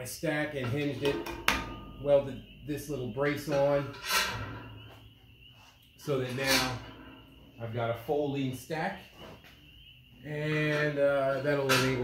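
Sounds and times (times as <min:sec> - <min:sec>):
metal smokestack clanking: 0:00.5 - 0:08.1, 0:09.8 - 0:12.0.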